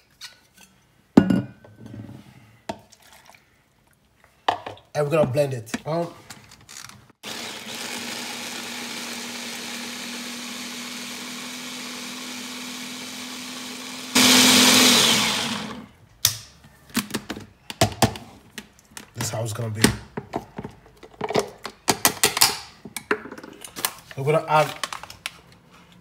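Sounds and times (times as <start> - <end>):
hand blender motor humming: 7.2 - 15.9.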